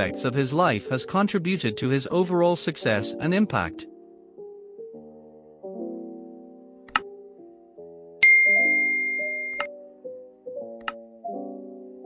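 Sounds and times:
soft piano music: 3.1s - 12.0s
bright bell ding: 8.2s - 9.7s
click sound effect: 8.9s - 9.7s.

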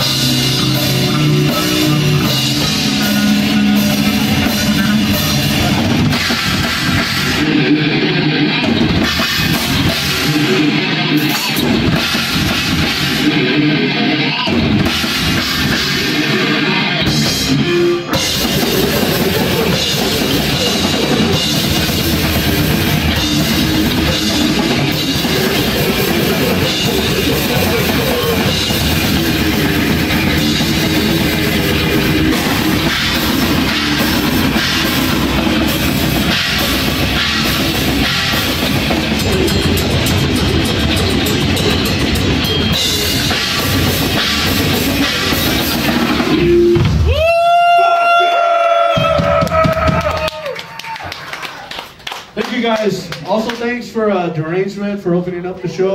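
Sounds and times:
distorted electric guitar riffing: 0.0s - 47.6s
fast drum kit: 0.0s - 48.2s, 48.8s - 50.6s
bass guitar: 0.0s - 50.4s.

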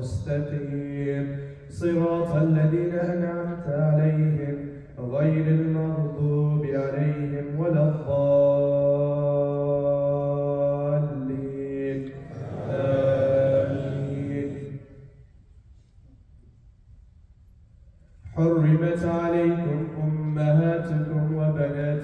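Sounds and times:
man chanting melodic recitation: 0.0s - 15.0s, 18.3s - 22.0s.

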